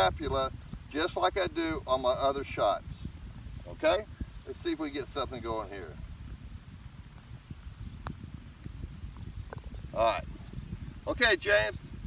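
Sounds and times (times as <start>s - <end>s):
low uneven rumble: 0.0s - 12.0s.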